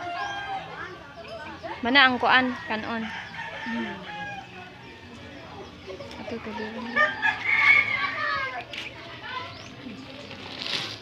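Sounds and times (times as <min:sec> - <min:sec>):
faint background voices: 0:00.0 - 0:11.0
rooster crowing: 0:06.9 - 0:08.5.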